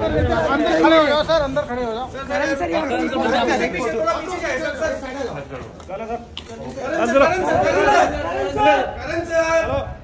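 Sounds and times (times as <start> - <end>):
men shouting and talking: 0.0 - 10.0.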